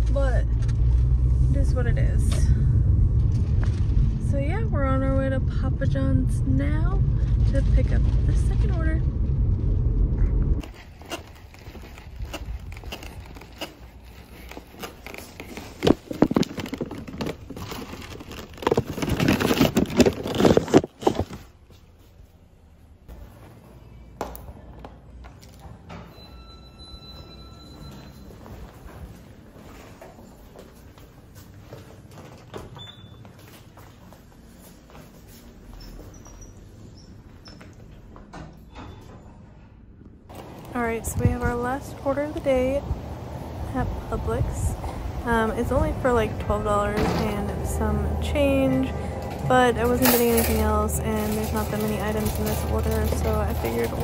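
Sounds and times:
car road noise: 0:00.0 - 0:10.6
paper bag crinkling and rustling: 0:10.6 - 0:21.6, 0:49.8 - 0:54.0.

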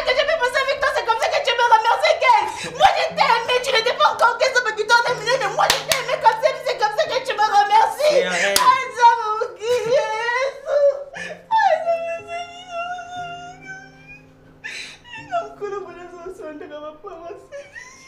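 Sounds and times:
soft background music: 0:00.0 - 0:18.0
woman whining and whimpering: 0:09.2 - 0:16.2.

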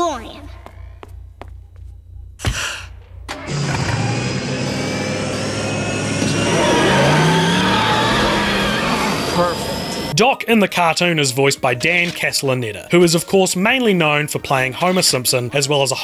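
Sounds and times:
engine-like whoosh with gliding tones: 0:04.8 - 0:10.1.

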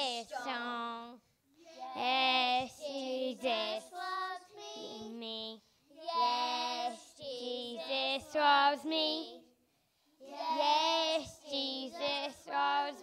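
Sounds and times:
children singing into microphone: 0:01.9 - 0:05.2, 0:06.0 - 0:09.3, 0:10.2 - 0:13.0.

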